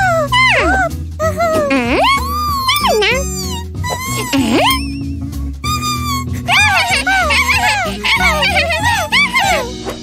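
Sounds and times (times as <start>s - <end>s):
light background music: 0.0s - 10.0s
cartoon voices giggling: 5.7s - 9.7s.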